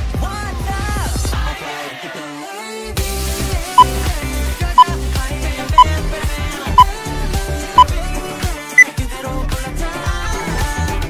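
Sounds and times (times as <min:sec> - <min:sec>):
background music: 0:00.0 - 0:11.0
timer beeps: 0:03.8 - 0:04.1.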